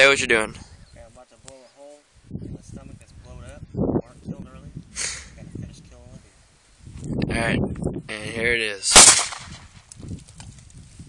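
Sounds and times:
pistol shot: 8.9s - 9.7s.

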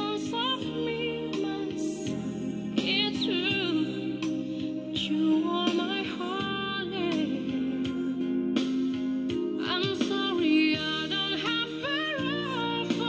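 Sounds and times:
woman singing slow ballad: 0.0s - 13.0s.

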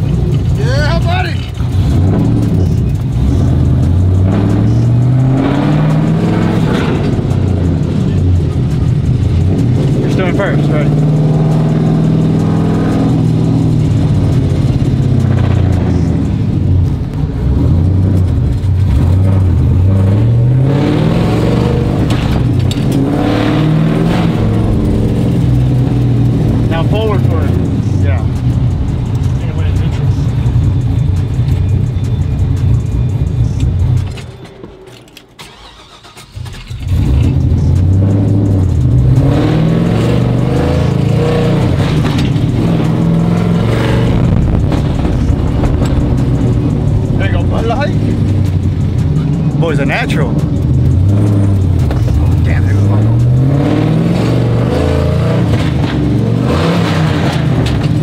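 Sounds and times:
truck engine accelerating: 0.0s - 58.0s.

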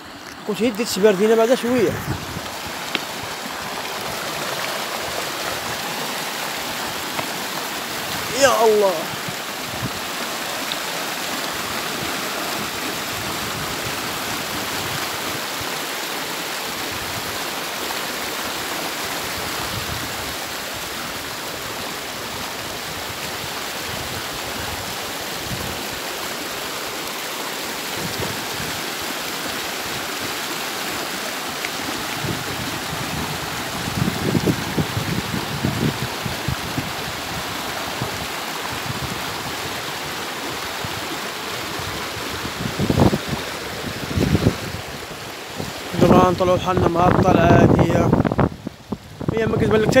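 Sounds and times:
river rushing over stones: 0.0s - 50.0s.

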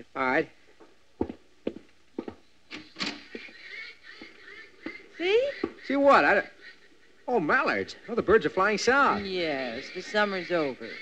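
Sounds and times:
footsteps on wooden floor: 0.8s - 2.5s
ducks calling: 2.7s - 11.0s.

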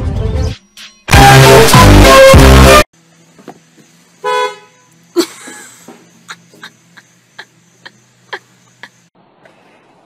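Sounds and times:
car horn honk: 4.2s - 4.9s.

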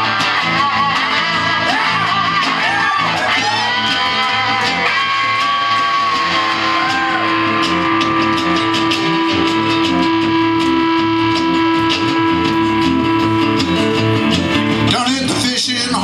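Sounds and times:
electric guitar lead: 0.0s - 16.0s
strummed acoustic guitar: 0.0s - 16.0s.

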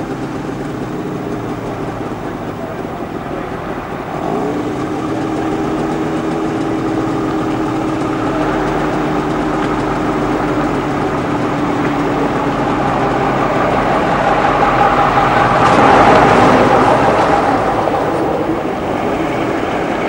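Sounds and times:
lorry diesel engine pulling away: 0.0s - 20.0s.

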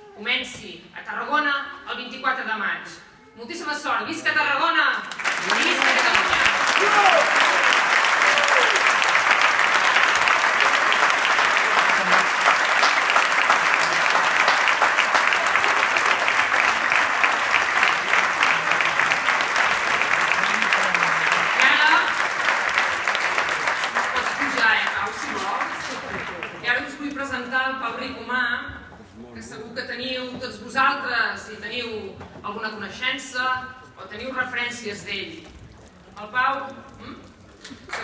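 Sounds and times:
crowd applauding: 5.0s - 27.2s, 37.5s - 38.0s.

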